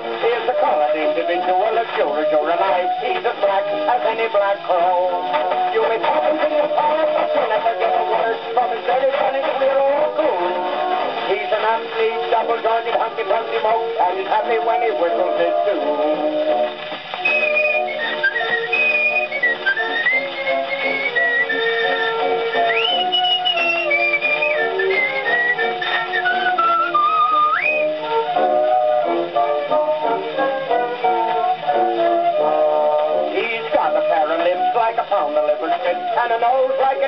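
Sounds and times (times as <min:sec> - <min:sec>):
old gramophone band recording: 0:00.0 - 0:37.0
man whistling a melody: 0:17.2 - 0:33.2.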